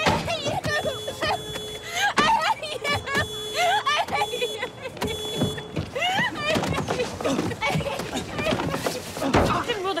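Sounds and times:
car horn blasts: 0.1 - 6.0.

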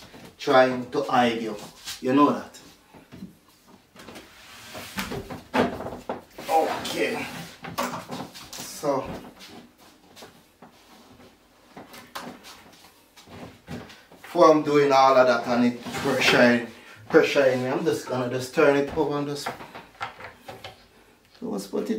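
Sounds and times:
wooden shelving knocks and scrapes: 4.0 - 12.6, 15.6 - 20.8.

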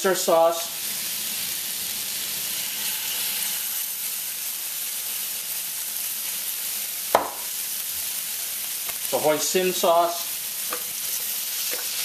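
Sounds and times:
vegetables sizzling in a wok: 0.0 - 12.0.

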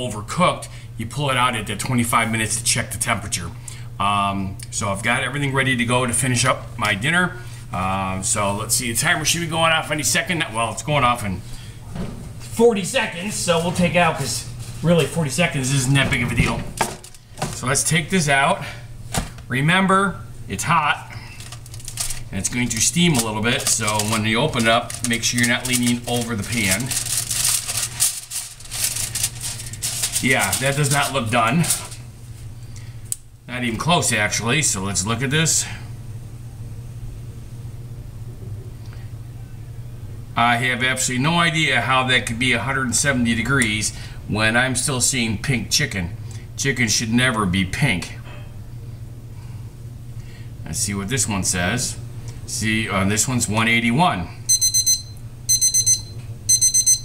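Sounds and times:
aluminium foil crinkling: 16.9 - 17.6, 21.2 - 32.0
oven timer beeping: 54.5 - 57.0.

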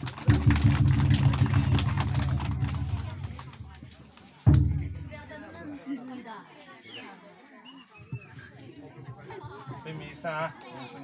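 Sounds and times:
deep booming percussion: 0.2 - 3.7, 4.5 - 5.4.

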